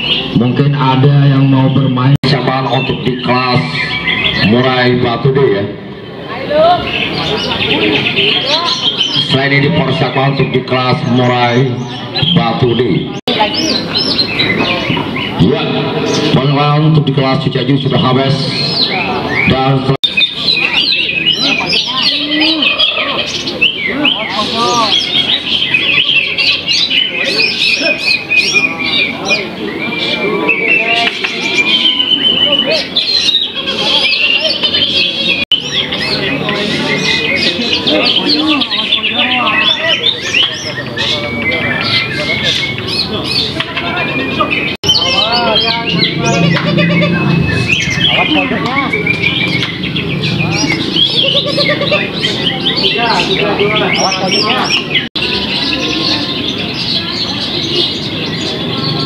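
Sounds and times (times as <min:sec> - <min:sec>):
murmur of voices: 0:00.0 - 0:59.0
songbirds chirping and whistling: 0:00.0 - 0:59.0.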